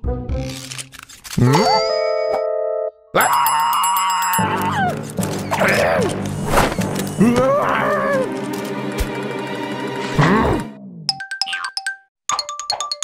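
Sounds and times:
loud held wail: 3.2 - 5.0.

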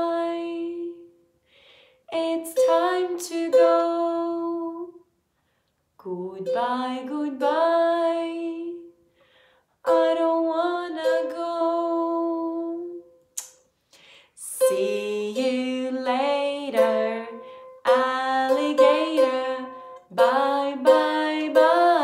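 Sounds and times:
woman singing: 0.0 - 1.1, 2.1 - 5.0, 6.0 - 8.9, 9.9 - 13.0, 14.4 - 22.0
ukulele strumming: 14.4 - 22.0.

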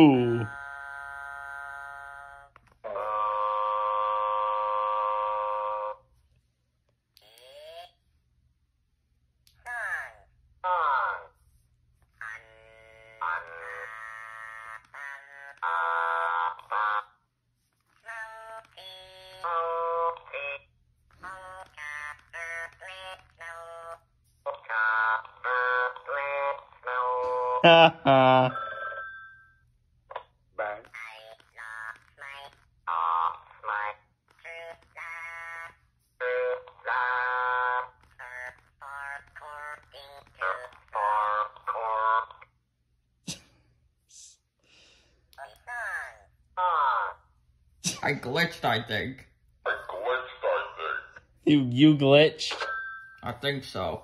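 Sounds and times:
electronic voice and melody snippets: 0.0 - 0.8, 24.5 - 28.6
toy buzzy electronic note: 0.0 - 6.0, 12.2 - 17.1.

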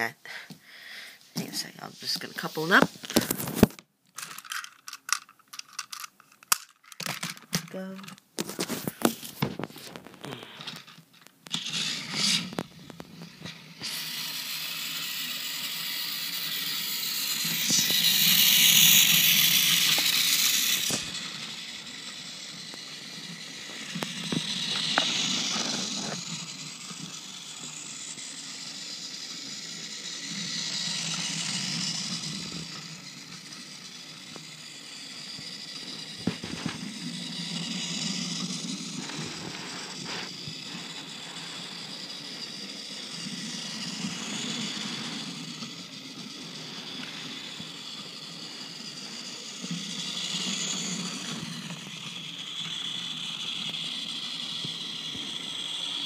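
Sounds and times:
toy train motor whirring: 0.0 - 56.0
plastic wheels rattling on rails: 2.1 - 27.8.

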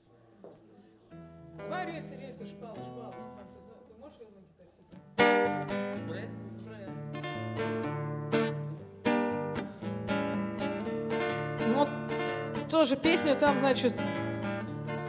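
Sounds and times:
acoustic guitar strumming: 1.2 - 3.8, 4.9 - 15.0.

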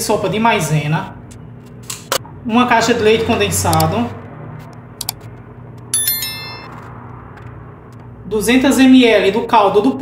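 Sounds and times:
bright metallic ding: 6.0 - 6.8.

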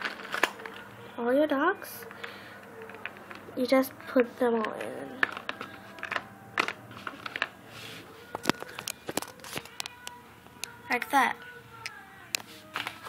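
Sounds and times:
paper handling: 0.0 - 0.9, 4.6 - 10.0, 12.4 - 13.0.

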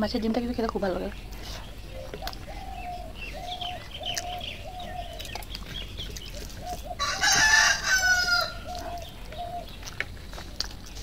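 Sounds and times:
small bird chirps: 1.1 - 10.0
rooster crowing: 7.0 - 8.8.

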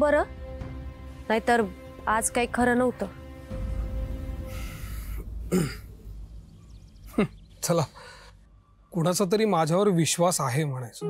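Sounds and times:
soft background music: 0.0 - 11.0
breathy rush of air: 3.8 - 6.3
man clearing throat: 5.5 - 5.9, 7.1 - 7.3.

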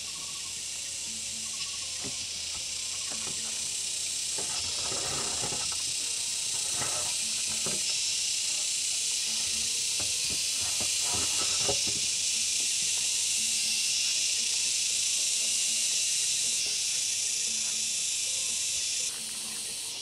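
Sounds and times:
insects buzzing: 0.0 - 20.0.

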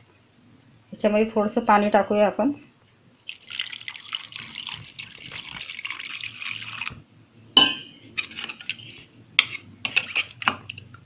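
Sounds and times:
water pouring onto flour: 3.2 - 7.0.

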